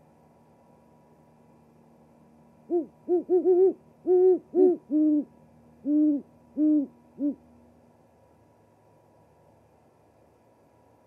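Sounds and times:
owl hooting: 0:02.7 - 0:07.4.

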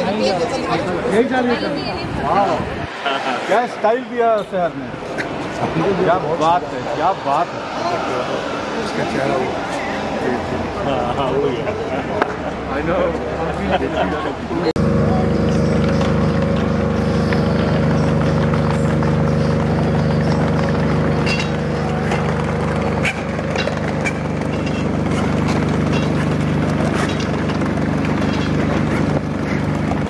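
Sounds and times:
low mechanical hum: 0:14.8 - 0:30.0.

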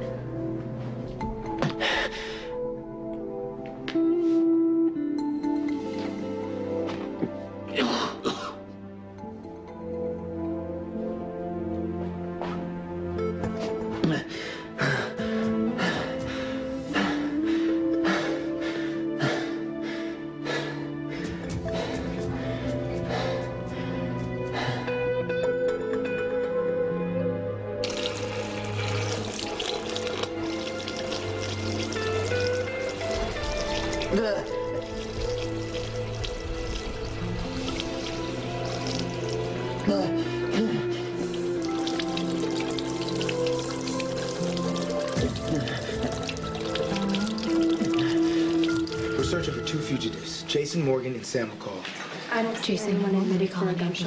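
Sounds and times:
soft instrumental music: 0:00.0 - 0:54.0
man coughing: 0:07.8 - 0:08.6
tap water running into sink: 0:27.8 - 0:39.8, 0:41.2 - 0:50.0.

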